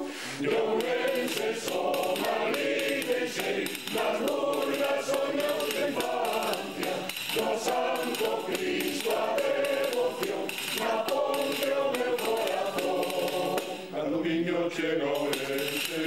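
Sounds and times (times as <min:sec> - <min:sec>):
mixed choir singing in harmony: 0:00.0 - 0:16.0.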